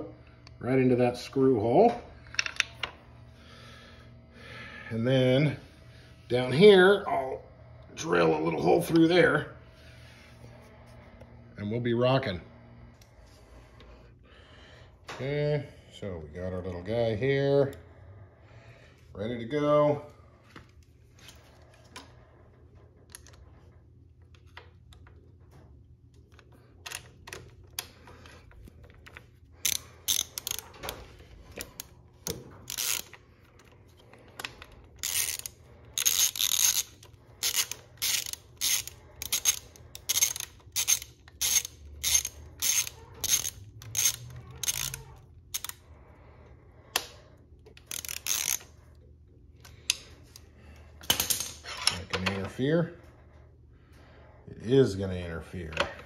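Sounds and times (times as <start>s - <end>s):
ratchet wrench clicking: 29.0s - 30.8s, 31.5s - 33.7s, 34.4s - 45.9s, 47.7s - 48.8s.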